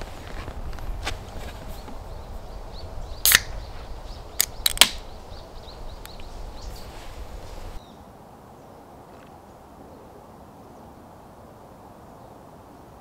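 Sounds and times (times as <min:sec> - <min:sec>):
birds chirping faintly: 0:00.0 - 0:13.0
drinks can popping open: 0:03.2 - 0:03.6, 0:04.4 - 0:05.1.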